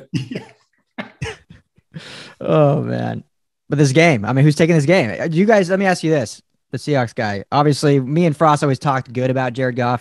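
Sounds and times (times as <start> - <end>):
man chuckling or coughing: 0.0 - 2.1.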